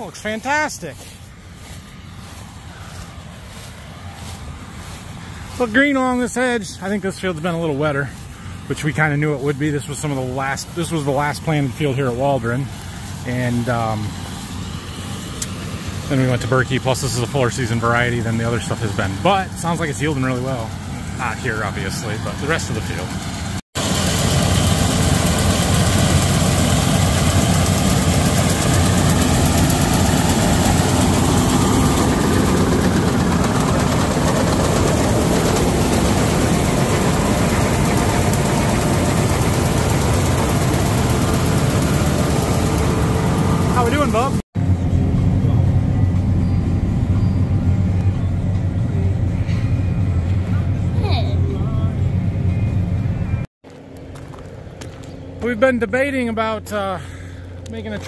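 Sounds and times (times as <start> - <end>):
combine harvester drone: 0.0 - 58.0.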